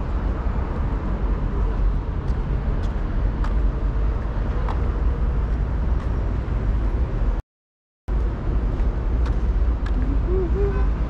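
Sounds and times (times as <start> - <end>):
road traffic rumble: 0.0 - 7.4, 8.1 - 11.0.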